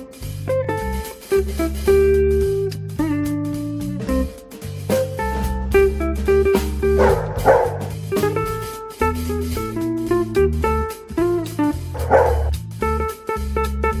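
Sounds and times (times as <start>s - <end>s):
bass line: 0.0s - 14.0s
plucked guitar: 0.0s - 14.0s
dog barking: 7.0s - 8.0s, 12.0s - 12.5s.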